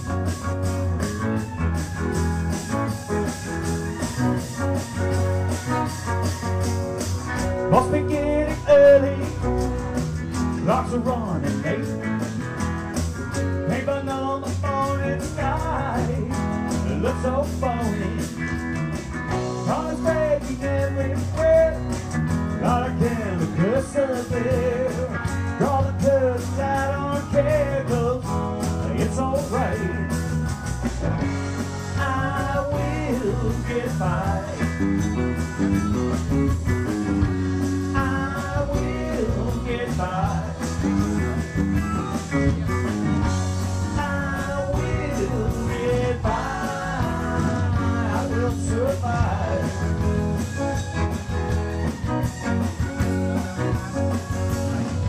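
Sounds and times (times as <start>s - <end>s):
live rock band playing: 0.0s - 55.0s
lead guitar bending notes: 40.4s - 48.6s.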